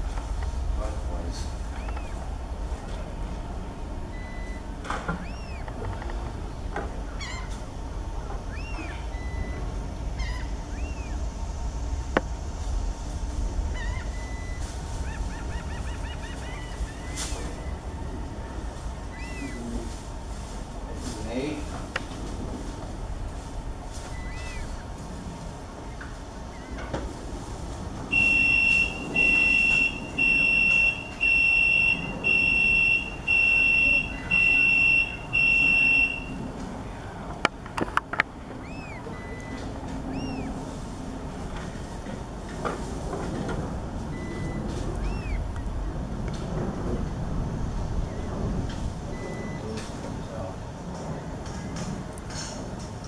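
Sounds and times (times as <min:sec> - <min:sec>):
low background rumble: 0:00.0 - 0:53.0
electronic warning beeps: 0:04.1 - 0:05.7, 0:08.5 - 0:09.7, 0:13.8 - 0:14.8, 0:15.5 - 0:18.1, 0:19.1 - 0:19.8, 0:28.1 - 0:36.4, 0:38.6 - 0:40.5, 0:44.0 - 0:45.4, 0:48.0 - 0:48.4, 0:49.1 - 0:49.8
short high beep: 0:28.2 - 0:36.3.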